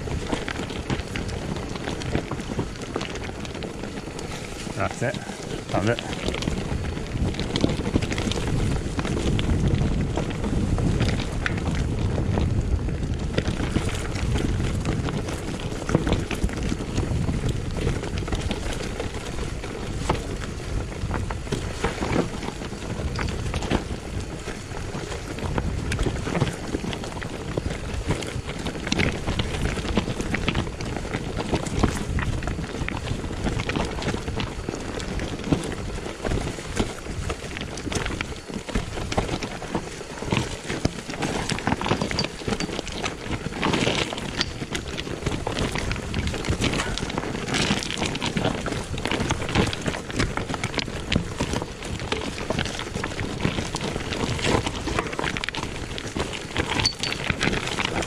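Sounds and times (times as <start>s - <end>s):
bike knocking and rattling: 0.0s - 58.0s
tyres crunching over stones: 0.0s - 58.0s
wind on microphone: 0.0s - 58.0s.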